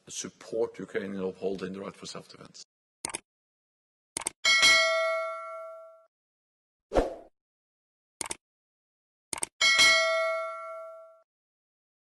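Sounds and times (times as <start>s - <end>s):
notification bell ding: 9.6s - 11.2s.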